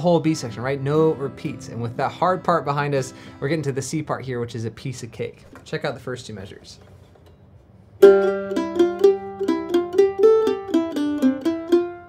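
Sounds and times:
flatpicked mandolin fiddle tune: 8.0 - 12.0.

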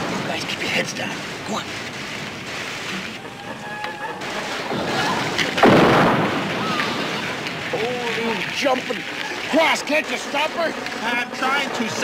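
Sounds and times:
steady noisy background: 0.0 - 12.0
explosion blast: 4.5 - 7.9.

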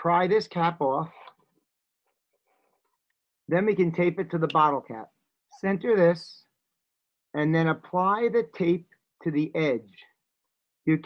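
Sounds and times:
man speaking: 3.5 - 6.5, 7.4 - 10.0.

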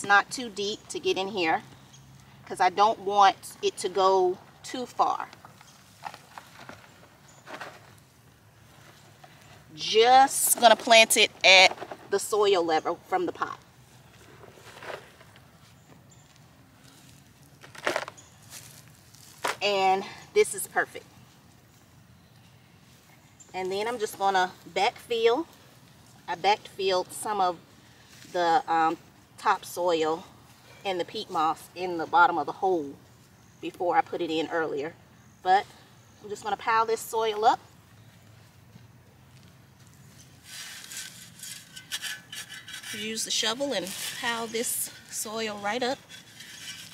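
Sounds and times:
gloved hands scuffing soil: 13.9 - 19.9, 38.0 - 46.9.

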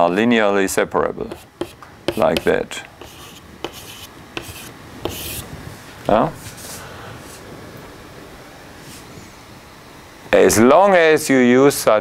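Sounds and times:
chalk scratching on blackboard: 1.3 - 5.4
chalk tapping on blackboard: 1.3 - 5.4.

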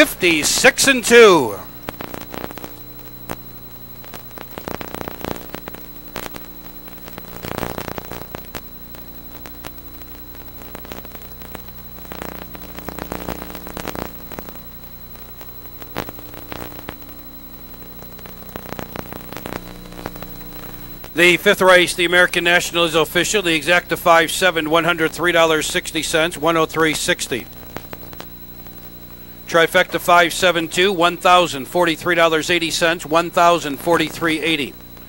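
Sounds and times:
crackles and pops: 0.0 - 35.0
faint high-pitched whine: 0.0 - 35.0
low electrical hum: 0.0 - 35.0.

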